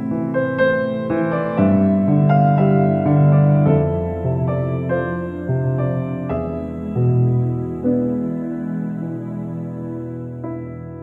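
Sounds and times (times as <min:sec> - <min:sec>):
gentle instrumental music: 0:00.0 - 0:11.0.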